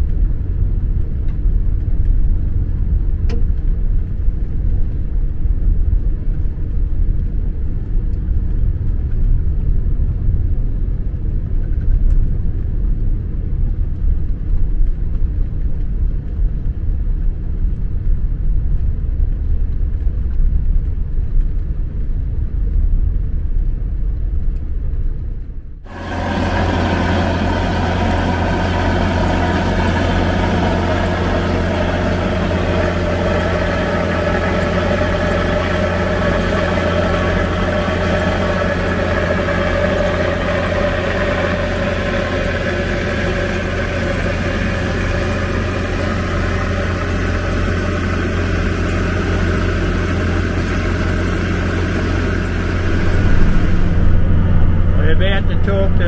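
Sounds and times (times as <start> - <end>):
vehicle engine running steadily: 0.0 - 56.0.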